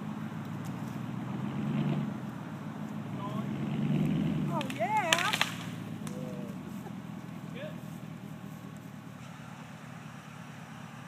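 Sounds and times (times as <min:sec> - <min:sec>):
pickup engine pulling under load: 0:00.0 - 0:11.0
sharp cracks: 0:03.7 - 0:06.6.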